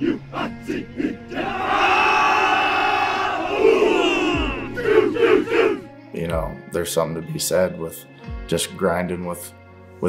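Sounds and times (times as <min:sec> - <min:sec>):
men shouting together: 0:00.0 - 0:05.9.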